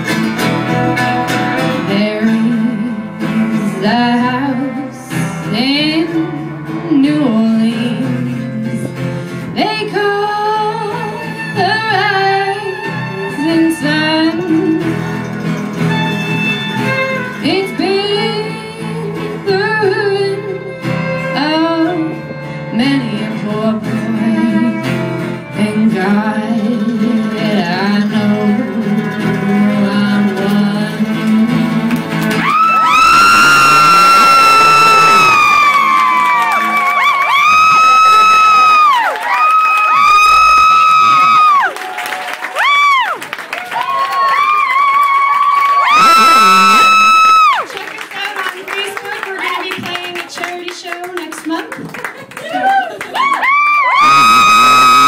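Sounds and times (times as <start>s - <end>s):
folk band playing: 0.0s - 39.1s, 45.9s - 52.4s.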